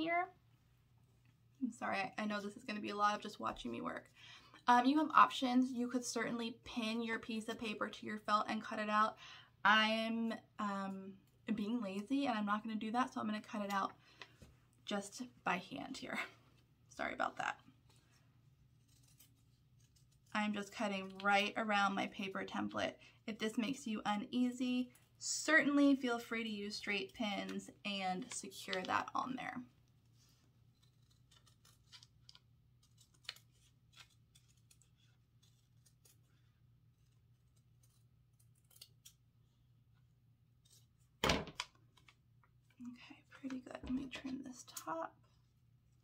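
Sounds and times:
faint scissors snipping: 0:30.8 - 0:39.2.

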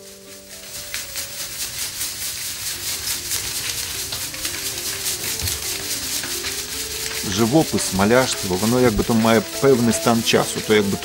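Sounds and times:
hand-sanding rubbing strokes: 0:00.0 - 0:11.0
soft music with slow notes: 0:00.0 - 0:11.0.

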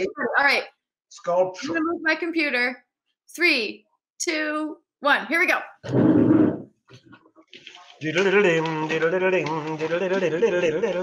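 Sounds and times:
faint clicks and rustles: 0:06.9 - 0:11.0.

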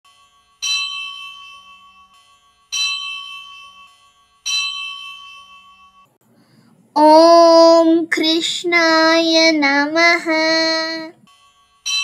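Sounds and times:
bell ringing: 0:00.1 - 0:06.1, 0:11.2 - 0:12.0.

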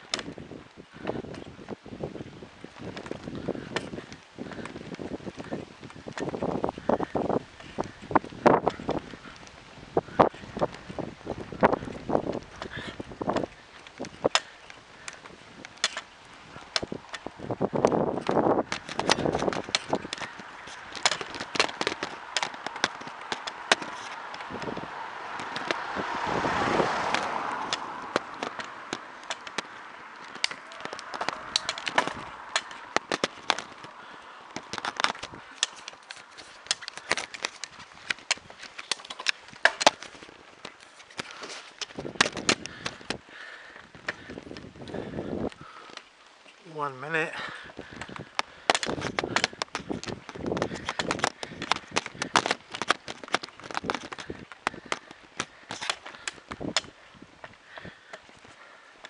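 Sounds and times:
bicycle rattles and clicks: 0:00.0 - 0:59.0
rush of noise: 0:16.4 - 0:40.3.

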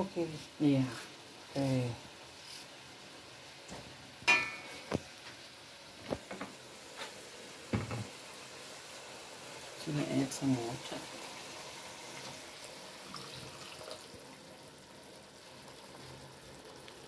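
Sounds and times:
curry sizzling in a pot: 0:00.0 - 0:17.0.

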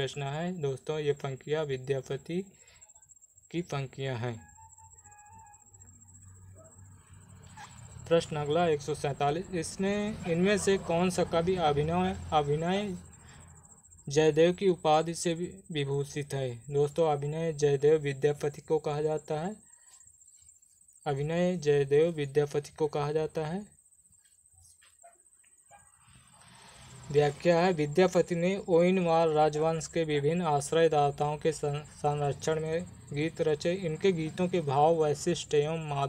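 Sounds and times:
steady low hum: 0:00.0 - 0:25.1
faint high whine: 0:00.0 - 0:36.0.

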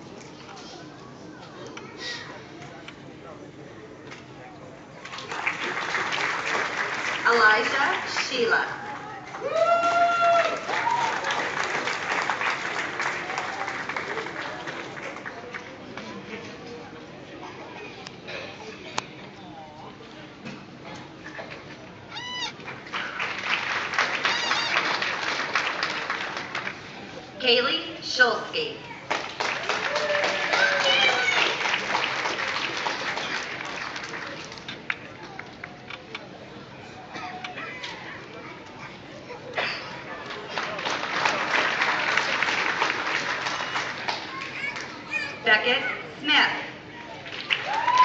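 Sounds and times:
audience applauding: 0:05.0 - 0:15.9, 0:22.6 - 0:27.2, 0:29.1 - 0:35.8, 0:40.1 - 0:45.2, 0:47.2 - 0:48.0
high-pitched whoops: 0:09.4 - 0:11.2, 0:47.6 - 0:48.0.

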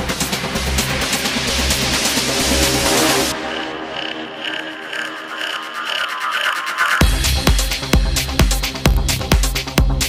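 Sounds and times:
synth line: 0:02.6 - 0:07.0.

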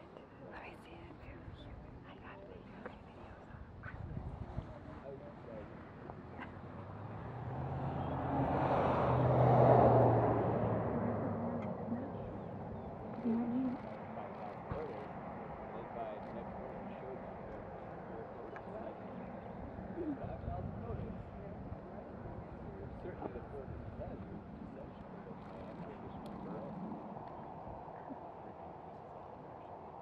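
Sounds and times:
vehicle driving past: 0:06.6 - 0:20.0.

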